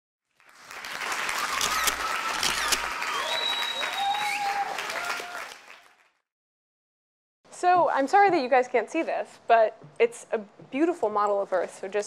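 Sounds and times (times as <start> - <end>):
audience applauding: 0.3 - 6.2.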